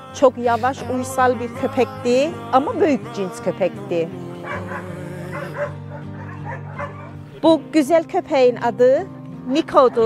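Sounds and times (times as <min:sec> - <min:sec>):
background music with low notes: 0:00.0 - 0:10.0
dogs barking and yipping: 0:04.4 - 0:07.4, 0:09.6 - 0:10.0.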